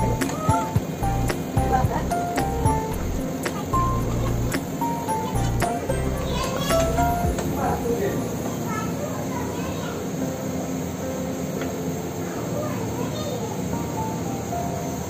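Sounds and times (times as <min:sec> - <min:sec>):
background music: 0:00.0 - 0:08.6.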